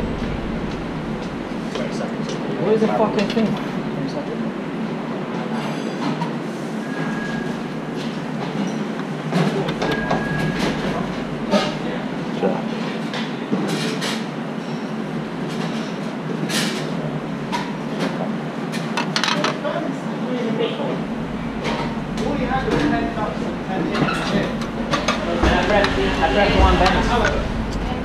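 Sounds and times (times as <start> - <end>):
kitchen rumble: 20.8 - 28.0.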